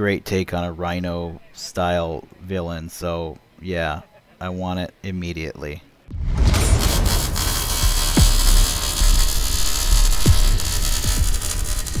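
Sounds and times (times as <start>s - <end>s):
low rumbling drone with hiss: 6.4s - 12.0s.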